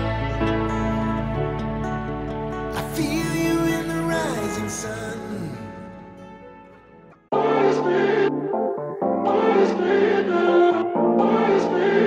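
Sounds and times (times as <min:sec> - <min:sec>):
pop music with choir-like vocals: 0:00.0 - 0:06.3, 0:07.3 - 0:12.0.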